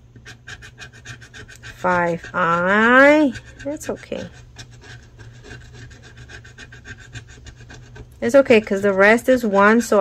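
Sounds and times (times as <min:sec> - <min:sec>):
metal tool scratching card: 0:00.2 - 0:10.0.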